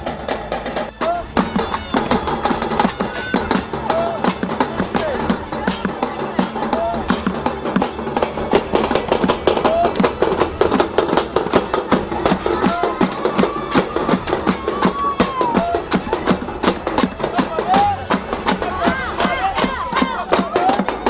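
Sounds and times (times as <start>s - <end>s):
improvised percussion band clattering: 0.0s - 21.0s.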